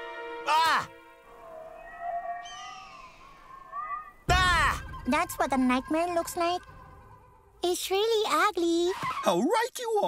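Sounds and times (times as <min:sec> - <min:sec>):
eerie wavering tones: 0:01.2 - 0:07.6.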